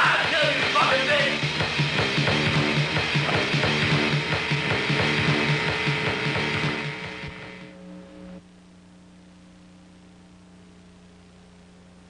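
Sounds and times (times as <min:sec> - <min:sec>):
rock music riff: 0:00.0 - 0:08.4.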